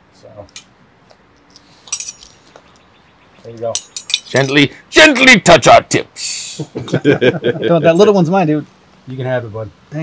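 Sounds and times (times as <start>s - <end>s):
metal forks clinking: 1.9s - 2.3s, 3.8s - 4.6s.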